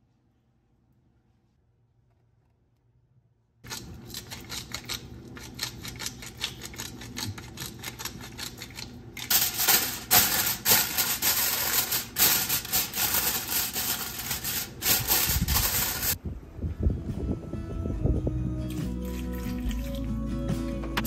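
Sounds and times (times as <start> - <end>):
aluminium foil crinkling: 3.7 - 16.2
pepper mill grinding: 3.7 - 16.2.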